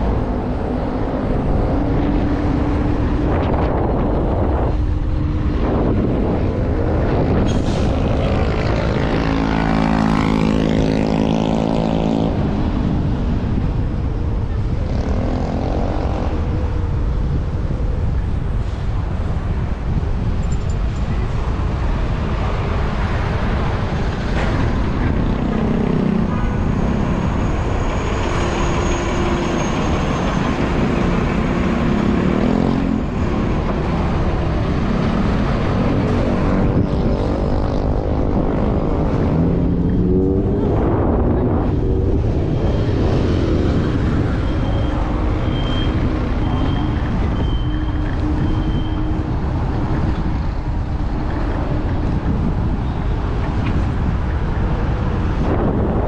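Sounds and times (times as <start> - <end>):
passing vehicle engine: 0.0 - 17.4, 21.0 - 56.0
city traffic: 0.0 - 56.0
wind buffeting microphone: 0.0 - 56.0.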